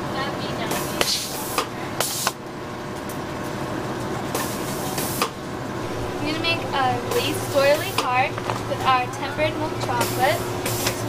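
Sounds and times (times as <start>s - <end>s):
machine humming: 5.4s - 11.0s.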